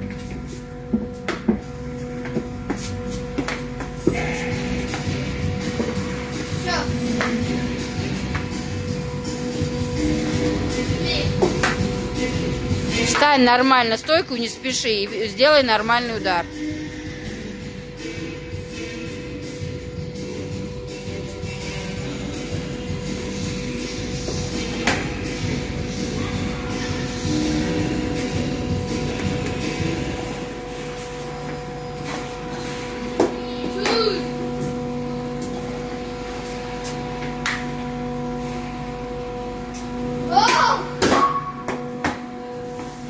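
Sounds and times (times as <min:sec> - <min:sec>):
background music: 0:00.0 - 0:43.0.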